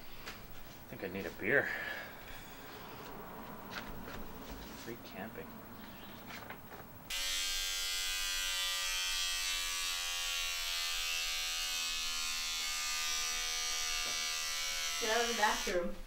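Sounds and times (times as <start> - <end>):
electric beard trimmer buzzing: 7.1 - 16.0.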